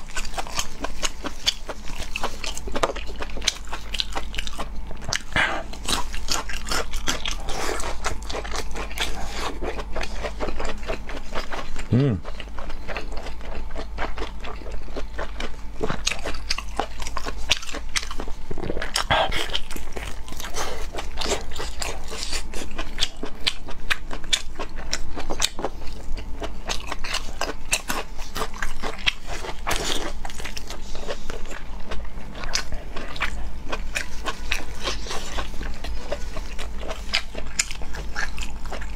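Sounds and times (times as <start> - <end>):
biting and chewing food: 0.0 - 38.9.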